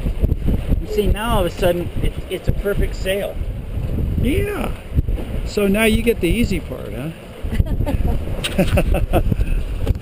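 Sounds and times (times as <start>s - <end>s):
water rushing along hull: 0.0s - 10.0s
wind buffeting microphone: 0.0s - 10.0s.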